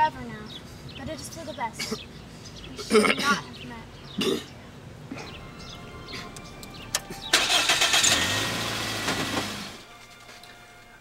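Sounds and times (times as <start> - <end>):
car engine cranking: 6.3 - 9.9
car engine idling: 6.3 - 9.9.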